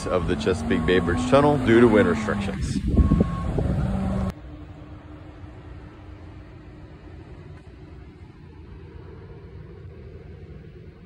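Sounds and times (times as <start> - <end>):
loud outdoor noise: 0.0 - 11.0
steady low rumble: 2.1 - 11.0.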